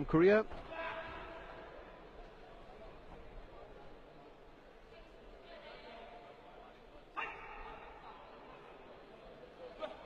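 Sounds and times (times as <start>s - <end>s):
murmur of arena crowd: 0.0s - 10.0s.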